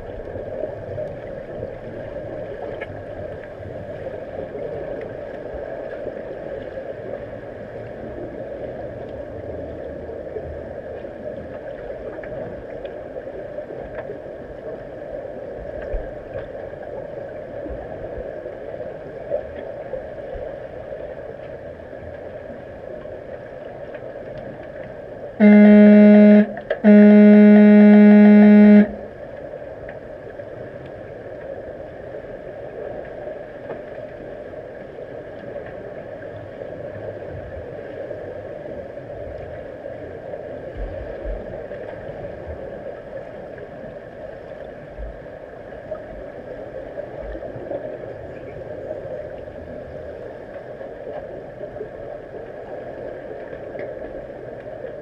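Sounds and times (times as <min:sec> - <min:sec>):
steady underwater hum: 0:00.0 - 0:55.0
underwater horn blasts: 0:25.4 - 0:29.4.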